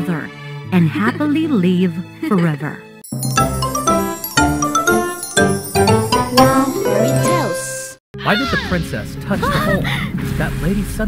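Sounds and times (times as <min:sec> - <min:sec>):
bright music jingle with bell notes: 0:03.0 - 0:08.0.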